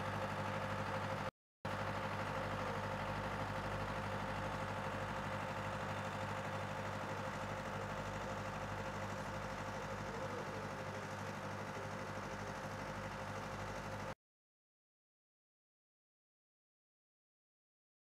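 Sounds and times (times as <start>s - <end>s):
engine idling hum: 0.0s - 14.2s.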